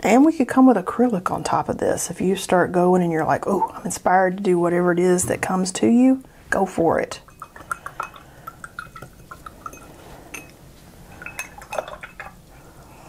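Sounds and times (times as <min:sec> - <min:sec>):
water sloshing in jar: 0:06.9 - 0:12.7
brush clinking against glass: 0:07.2 - 0:12.4.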